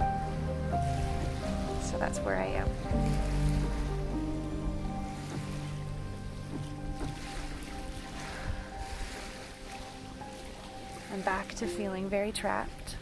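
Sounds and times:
soft music of held notes: 0.0 - 13.0
waves washing on shore: 0.0 - 13.0.

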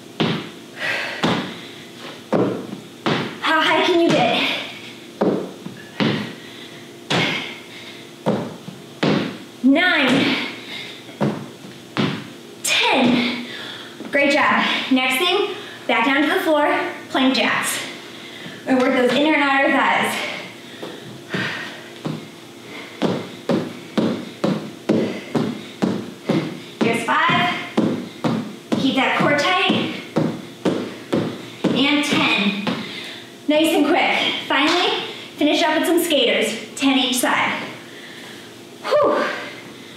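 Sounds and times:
feet thudding on tile floor: 0.2 - 3.4, 5.2 - 6.4, 7.1 - 7.5, 8.3 - 9.4, 11.1 - 12.3, 20.8 - 22.3, 23.0 - 33.0.

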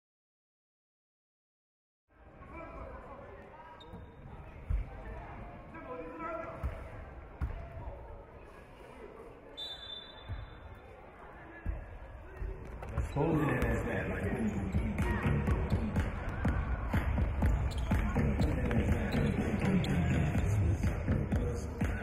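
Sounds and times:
faint voices talking: 2.1 - 22.0.

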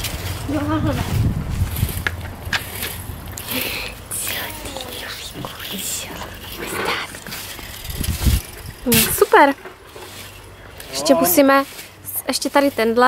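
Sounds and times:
soft indistinct talking: 4.1 - 7.1.

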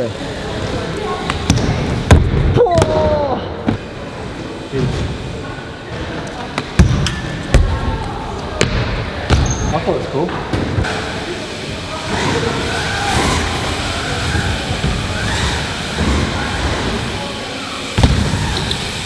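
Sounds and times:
bike tyres rolling on ramp: 0.0 - 19.0
bike thuds and knocks: 1.3 - 3.9, 17.9 - 19.0.

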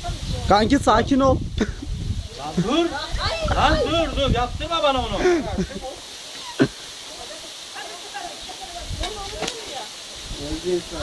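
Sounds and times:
man's voice: 2.4 - 5.9.

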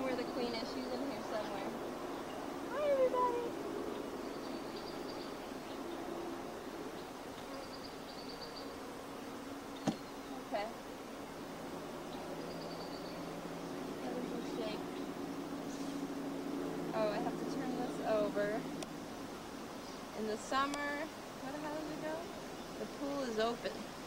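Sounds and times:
bees humming: 0.0 - 24.0.

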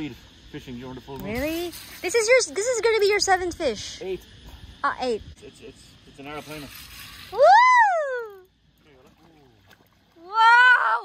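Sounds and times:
person whooping excitedly: 7.4 - 8.5, 10.3 - 11.0.

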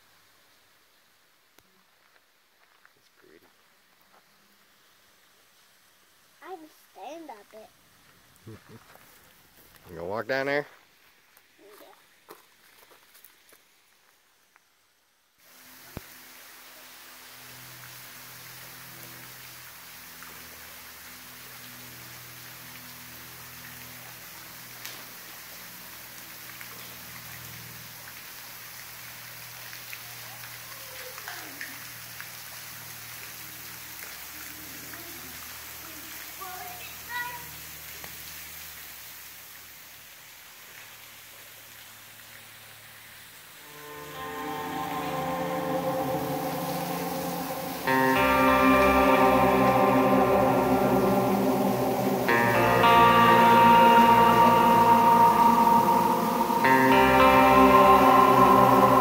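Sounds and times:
waterfall splashing onto stones: 0.0 - 14.6, 15.4 - 43.6
guitar music: 43.6 - 59.0.

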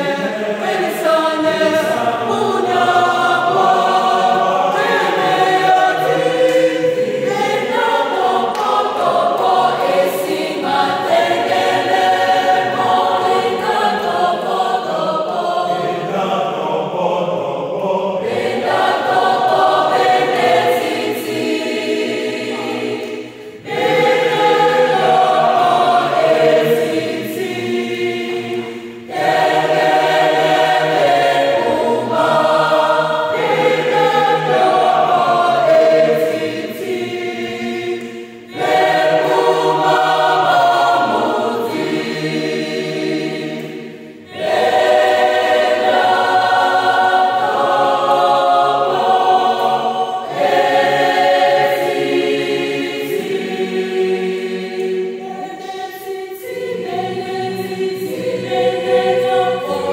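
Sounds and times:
choir singing a cappella: 0.0 - 59.9.

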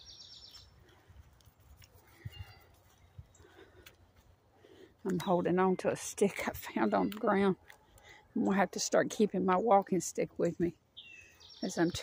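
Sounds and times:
faint birdsong: 0.0 - 12.0.

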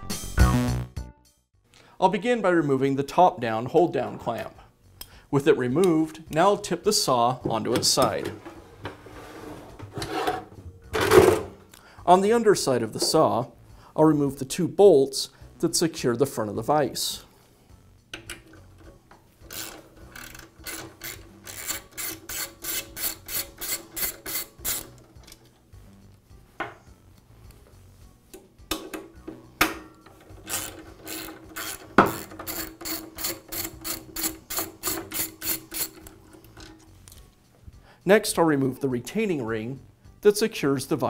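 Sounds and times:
socket ratchet clicking: 19.4 - 25.5, 30.1 - 36.2.

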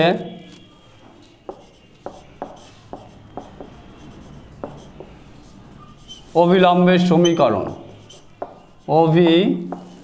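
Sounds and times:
marker writing on whiteboard: 1.0 - 10.0.

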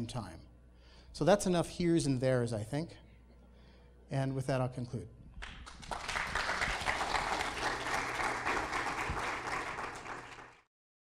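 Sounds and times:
audience applauding: 5.4 - 10.7.

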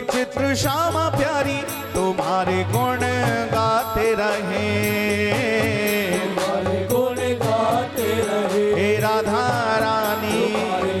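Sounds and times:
light percussion: 0.0 - 11.0
men singing devotional song: 0.0 - 11.0
sustained instrumental accompaniment: 0.0 - 11.0.

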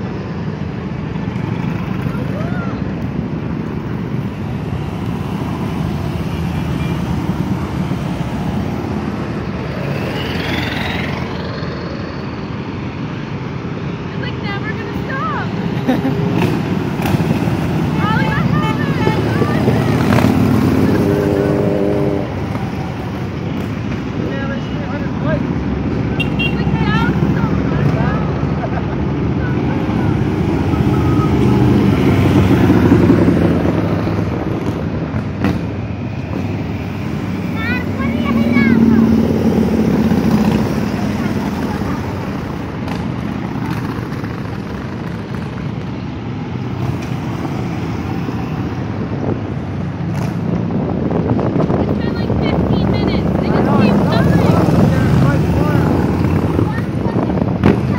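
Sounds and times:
motorcycles riding past: 0.0 - 57.9
traffic noise: 0.0 - 57.9.

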